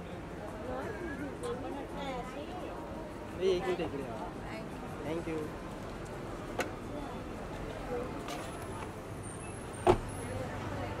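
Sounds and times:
car door thud: 9.8 - 10.1.

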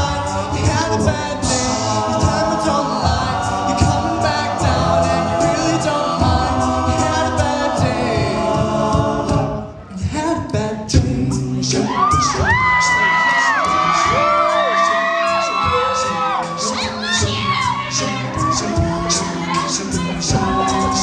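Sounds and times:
male group singing a cappella: 0.0 - 21.0
vocal percussion beat: 0.0 - 21.0
audience cheering: 11.8 - 18.6, 19.4 - 21.0.

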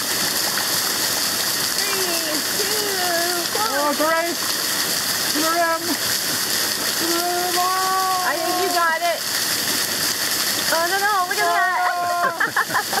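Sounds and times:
water splattering on plastic bottles: 0.0 - 13.0
person calling out: 7.0 - 9.0, 11.3 - 12.4.

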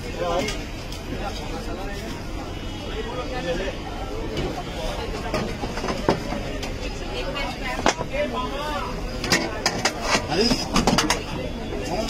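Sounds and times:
background chatter: 0.0 - 12.0
traffic hum: 0.0 - 12.0.

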